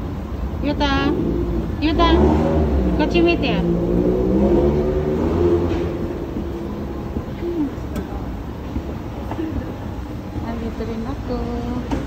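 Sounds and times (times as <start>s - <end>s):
escalator humming: 0.0s - 12.0s.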